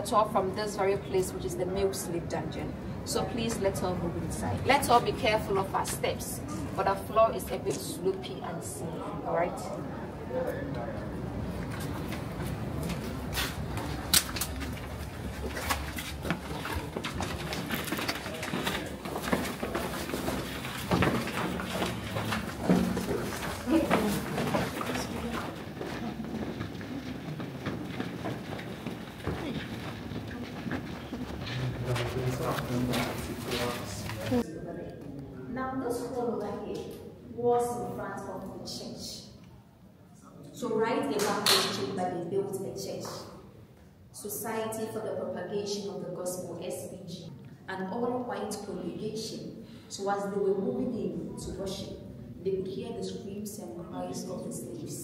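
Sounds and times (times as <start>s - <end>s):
woman talking: 0.0s - 9.8s, 23.6s - 25.5s, 35.5s - 39.4s, 40.6s - 43.4s, 44.2s - 55.0s
faint murmured voices: 0.0s - 37.0s
sharp scuffs and clicks: 11.6s - 34.3s
footsteps on stone floor: 11.6s - 34.4s.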